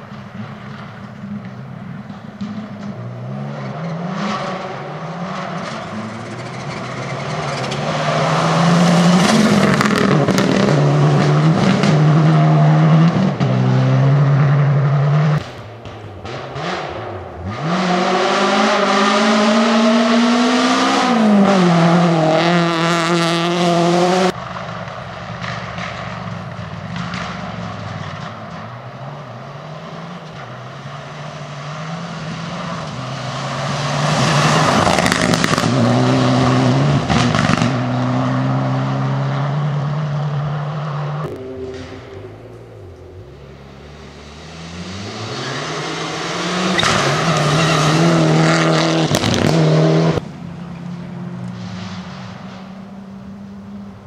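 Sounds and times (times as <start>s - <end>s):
rally car engines revving past: 0.0s - 54.0s.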